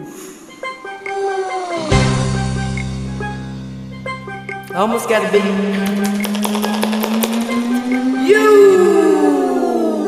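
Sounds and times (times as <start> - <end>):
long held vocal note: 1.0 - 2.3, 7.6 - 10.0
rapid handclaps: 5.8 - 8.0.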